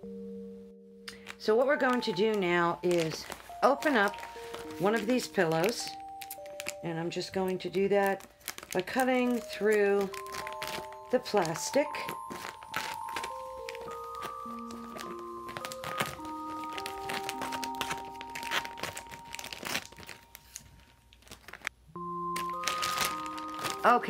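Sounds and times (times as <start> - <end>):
slow sustained background music: 0.0 - 24.0
plastic bag crinkling: 1.1 - 24.0.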